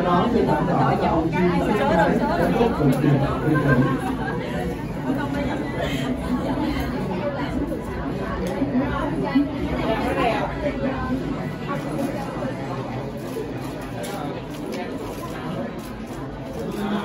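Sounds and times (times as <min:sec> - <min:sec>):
chatter of many people: 0:00.0 - 0:17.0.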